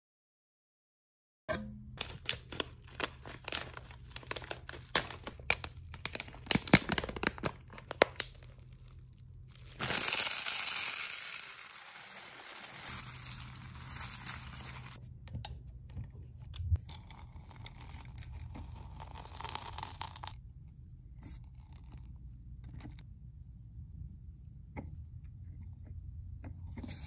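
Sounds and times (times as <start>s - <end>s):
plastic bag crinkling: 2.0s - 15.0s, 17.0s - 20.3s
wax beads pouring into metal pot: 2.0s - 15.0s, 16.9s - 20.4s
beads clicking when stirred: 9.5s - 15.0s.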